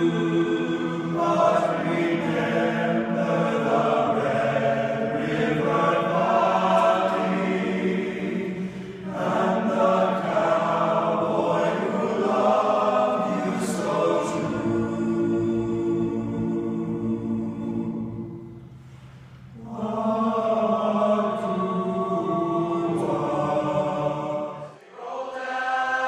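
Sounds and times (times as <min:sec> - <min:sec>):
choir singing sustained chords: 0:00.0 - 0:26.0.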